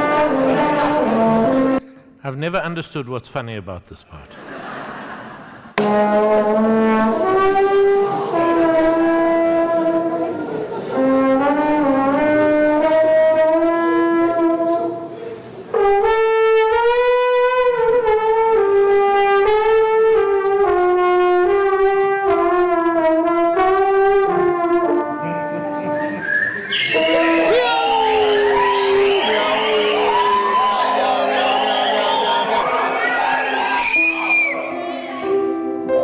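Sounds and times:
solo trombone melody: 0.0 - 1.9, 5.8 - 26.1.

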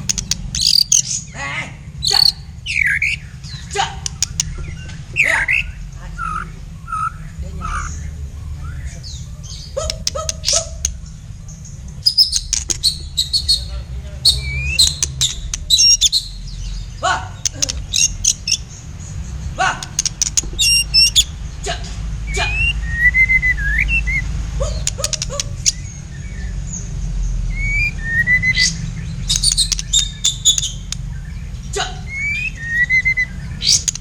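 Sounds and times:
songbirds chirping and whistling: 0.0 - 34.0
steady low rumble: 0.0 - 34.0.

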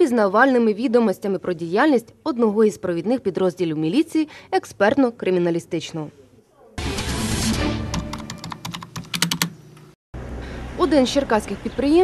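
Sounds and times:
computer keyboard typing: 7.9 - 9.6.

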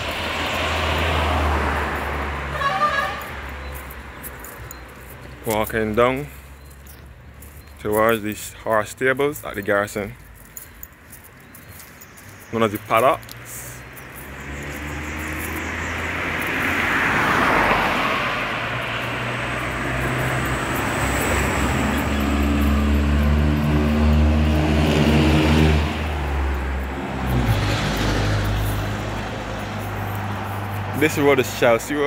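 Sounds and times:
cars passing by: 0.0 - 32.0.

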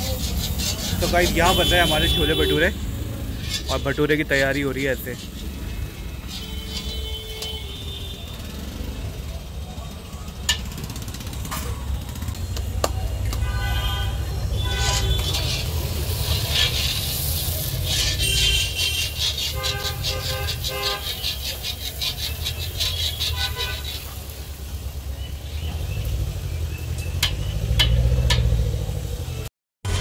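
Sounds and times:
sizzling in hot oil: 0.0 - 12.4, 14.1 - 30.0
low traffic rumble: 0.0 - 30.0
car horns tooting: 1.0 - 4.5, 6.2 - 8.7, 13.1 - 15.8, 17.9 - 22.1, 22.8 - 24.3.

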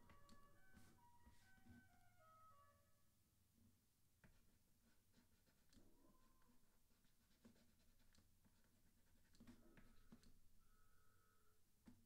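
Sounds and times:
stylus tapping on drawing tablet: 0.0 - 1.9.

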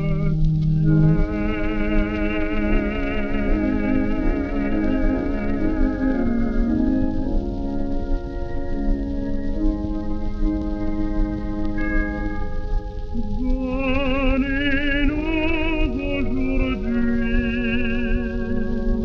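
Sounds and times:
old record slow melody: 0.0 - 19.0
record surface crackle: 0.0 - 19.0.

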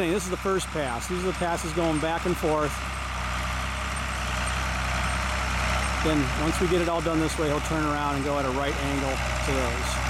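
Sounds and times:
tractor engine running under load: 0.0 - 10.0.

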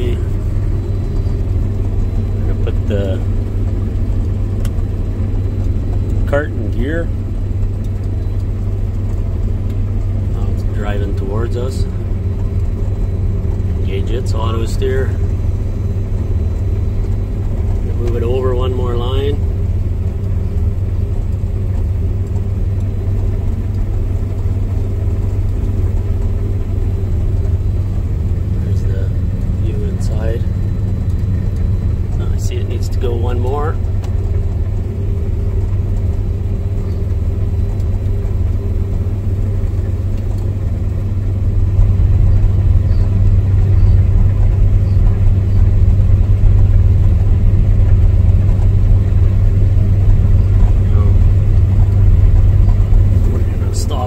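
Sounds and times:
combine harvester engine hum: 0.0 - 54.0.

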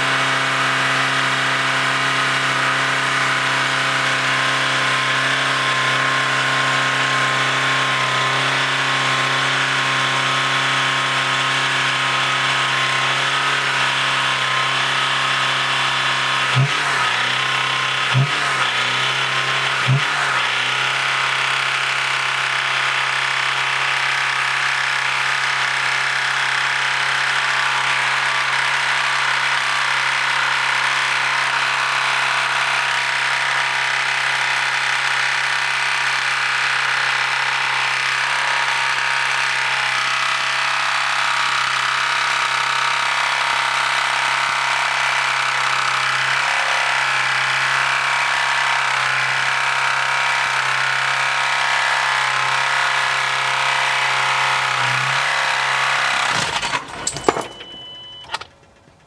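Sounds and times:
car engine running loudly: 0.0 - 59.0.

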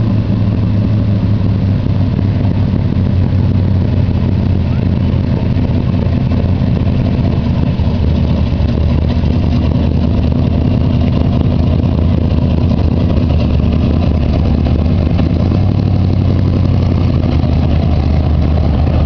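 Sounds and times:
car engine running at low speed: 0.0 - 19.0.

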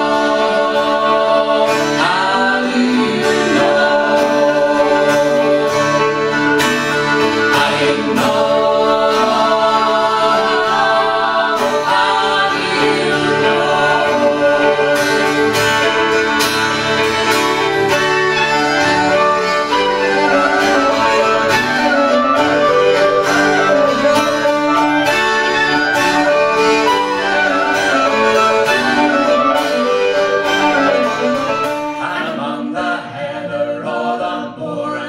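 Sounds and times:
fiddle: 0.0 - 32.9
wind instrument: 0.0 - 34.4
strummed acoustic guitar: 0.0 - 34.9.

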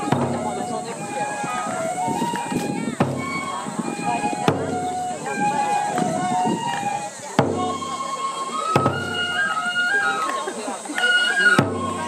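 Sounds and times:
voices chanting slow melody: 0.0 - 12.0.

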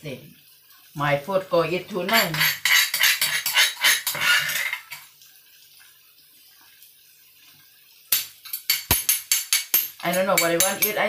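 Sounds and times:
metal utensil clattering on cookware: 2.0 - 5.1, 8.1 - 11.0.

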